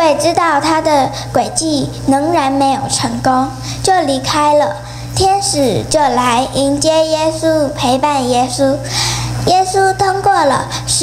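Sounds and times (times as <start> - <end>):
girl sing-song voice: 0.0 - 11.0
low steady hum: 0.0 - 11.0.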